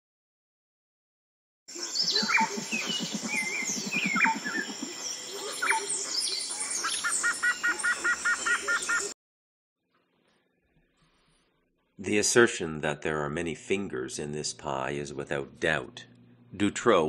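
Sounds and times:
low rapid pulsing bird call: 1.7s - 9.1s
birds chirping: 1.7s - 9.2s
fast even series of bird notes: 1.8s - 9.0s.

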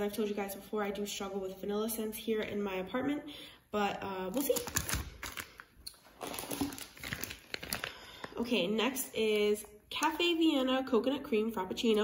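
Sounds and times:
plastic crinkling: 4.3s - 8.5s.

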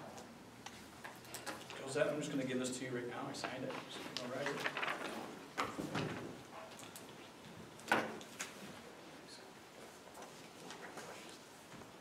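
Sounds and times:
paper taps and rustles: 3.4s - 6.3s.

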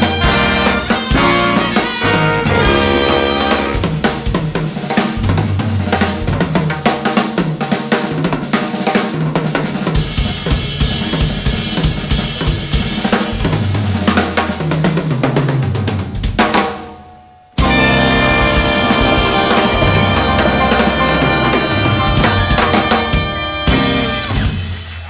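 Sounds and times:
drum kit playing: 0.0s - 25.0s
cymbals and hi-hat: 17.6s - 25.0s.

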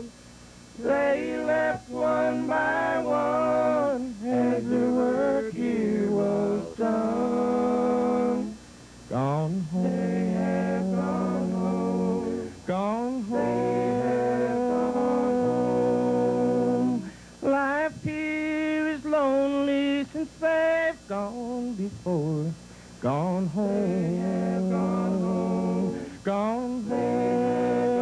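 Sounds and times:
male quartet singing in harmony: 0.8s - 28.0s.

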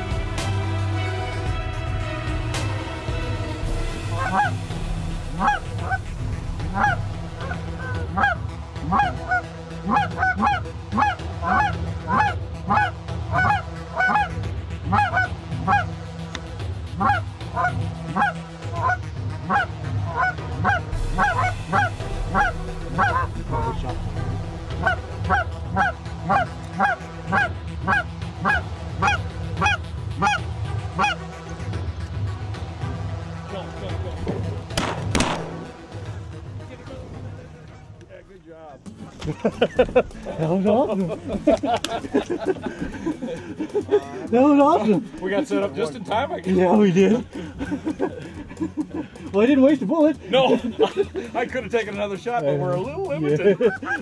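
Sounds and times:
geese honking: 0.0s - 31.9s.

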